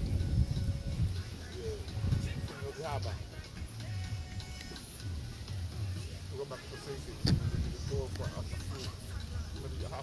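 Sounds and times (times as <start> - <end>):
faint voices: 5.7 - 10.0.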